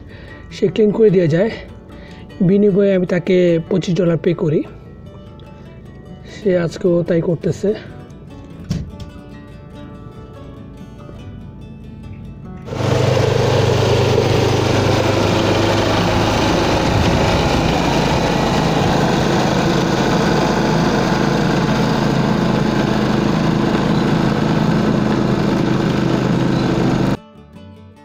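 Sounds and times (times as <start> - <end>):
snowblower churning snow: 12.7 - 27.2
snowblower engine running: 12.7 - 27.2.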